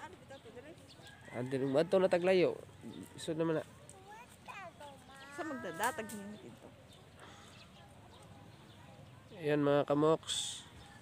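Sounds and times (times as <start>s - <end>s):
faint human voices: 0.0s - 11.0s.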